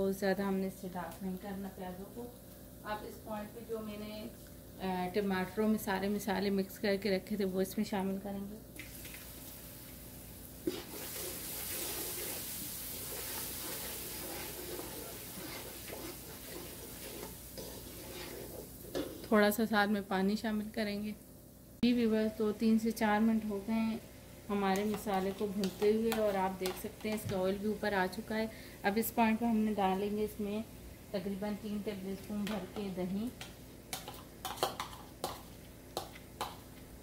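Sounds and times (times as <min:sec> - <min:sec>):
masala frying: 0:00.0 - 0:37.0
sauce frying in oil: 0:08.7 - 0:19.4
wooden spatula scraping pan: 0:10.6 - 0:19.4.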